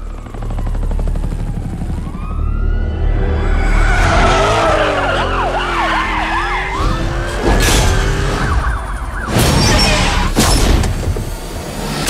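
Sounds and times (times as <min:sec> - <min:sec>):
police siren yelping: 0:00.0 - 0:07.5, 0:08.2 - 0:10.3.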